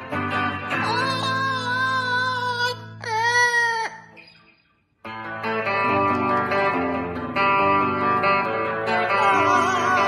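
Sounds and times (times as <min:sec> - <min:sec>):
electric guitar: 0:00.0 - 0:10.0.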